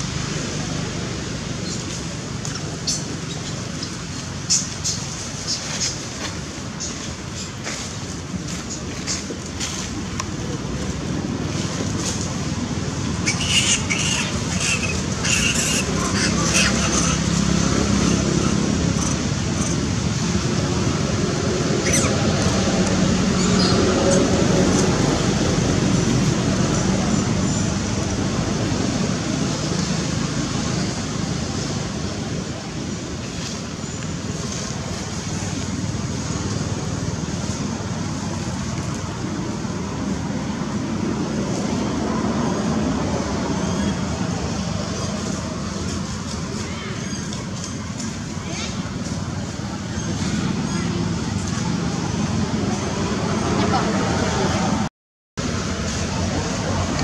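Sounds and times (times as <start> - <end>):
low outdoor rumble: 0.0 - 57.0.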